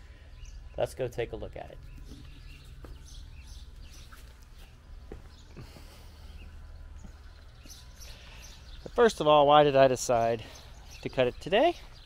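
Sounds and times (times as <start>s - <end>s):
faint footsteps: 1.7s - 9.1s.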